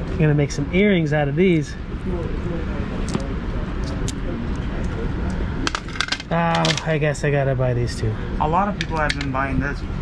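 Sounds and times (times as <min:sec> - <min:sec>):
faint murmuring voices: 0:01.7 - 0:07.2.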